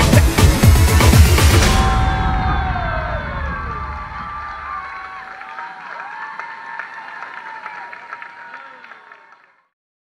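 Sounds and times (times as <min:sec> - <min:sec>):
dance music: 0:00.0 - 0:05.3
audience cheering: 0:00.0 - 0:09.7
audience clapping: 0:03.5 - 0:09.8.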